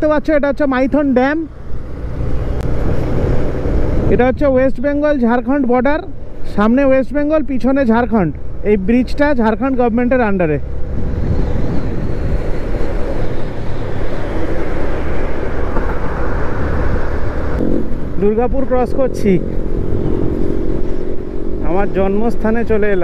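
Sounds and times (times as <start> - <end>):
motorcycle engine drone: 0.0 - 7.2, 8.2 - 23.0
wind rush on microphone: 1.7 - 5.2, 10.6 - 23.0.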